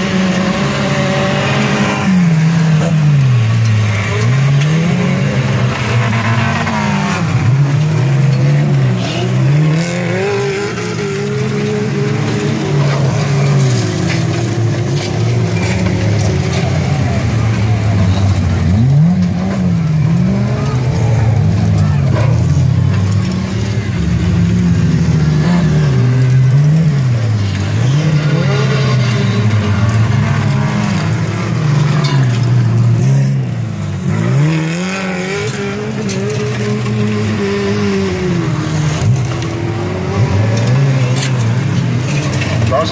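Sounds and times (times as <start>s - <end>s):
stock car engines revving: 0.0s - 42.9s.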